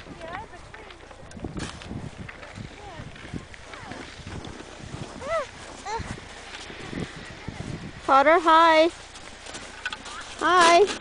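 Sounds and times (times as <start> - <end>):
footsteps in deep snow: 0.3 - 10.8.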